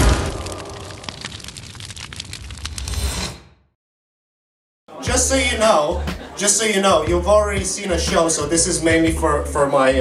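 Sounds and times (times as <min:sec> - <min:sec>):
dense crackle of small clicks: 0:00.1 - 0:02.9.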